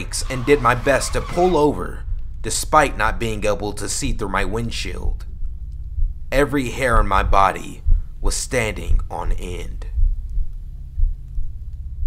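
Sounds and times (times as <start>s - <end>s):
heartbeat-like double pulse: 0.0s - 12.0s
low rumbling drone: 0.0s - 12.0s.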